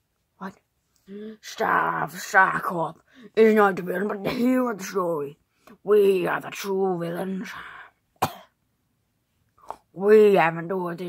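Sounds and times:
person speaking: 0.4 - 7.8
person coughing: 4.2 - 4.6, 8.2 - 8.6.

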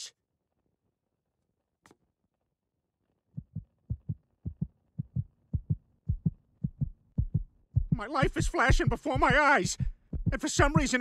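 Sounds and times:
heartbeat double thump: 3.4 - 11.0.

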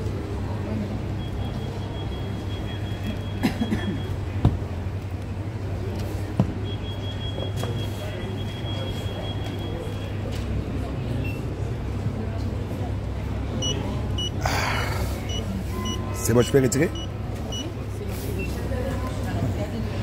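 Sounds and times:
low shop hum: 0.0 - 20.0
card terminal short high beeps: 6.6 - 10.2, 13.6 - 14.4, 15.2 - 17.8, 18.4 - 18.6.

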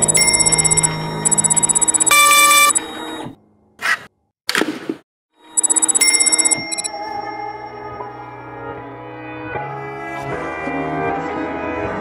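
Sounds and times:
electronic error buzz: 0.0 - 3.3
background music: 6.8 - 12.0.

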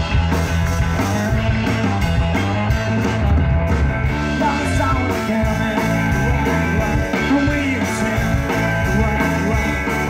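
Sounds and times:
rock band playing loudly: 0.0 - 10.0.

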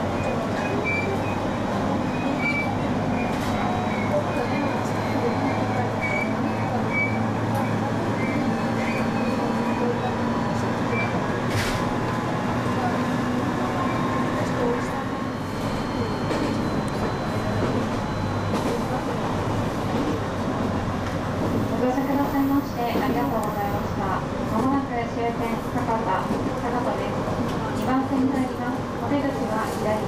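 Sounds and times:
train wheels on rails: 0.0 - 27.8.

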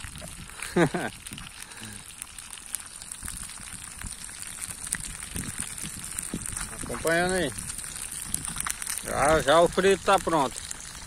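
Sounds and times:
fish sizzling in hot oil: 0.0 - 11.0
small crackles and pops: 0.0 - 11.0.

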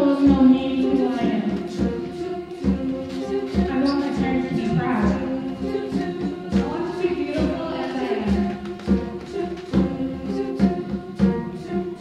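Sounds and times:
girls' choir singing: 0.0 - 12.0.

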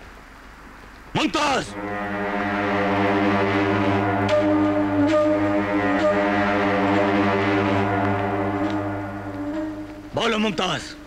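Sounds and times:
low sustained drone chord: 1.6 - 10.2.

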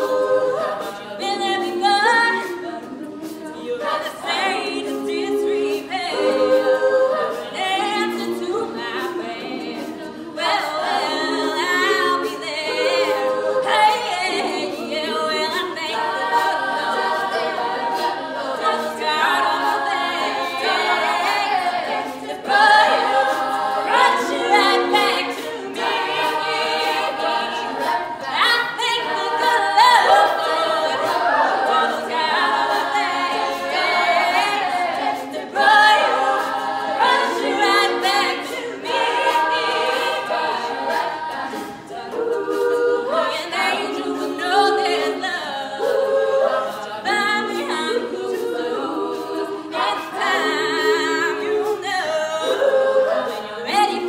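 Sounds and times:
women singing backing harmonies: 0.0 - 54.0.

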